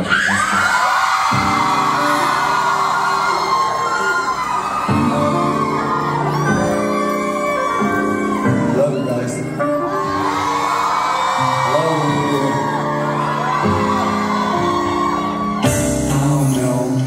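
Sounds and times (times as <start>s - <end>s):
crowd whooping: 0.0s - 17.0s
live concert music: 0.0s - 17.0s.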